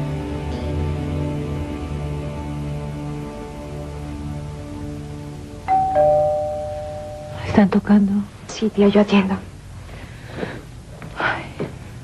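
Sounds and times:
two-note doorbell chime: 0:05.7 - 0:07.6.

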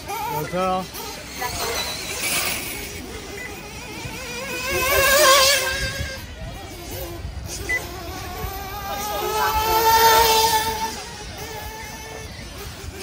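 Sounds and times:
toy car motor whining: 0:00.0 - 0:13.0.

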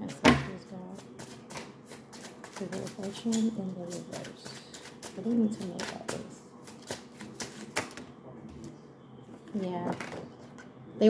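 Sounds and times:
cards being shuffled: 0:01.0 - 0:08.0.

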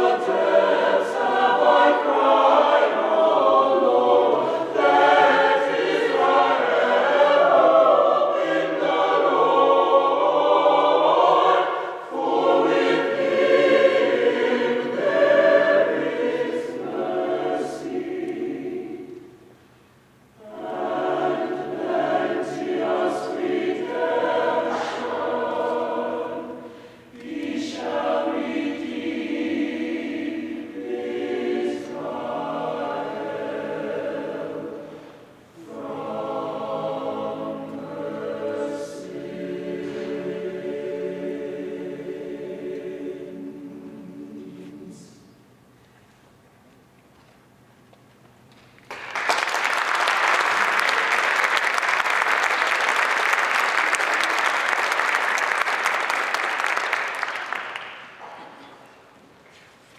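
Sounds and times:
mixed choir singing unaccompanied: 0:00.0 - 0:19.6, 0:20.4 - 0:45.4.

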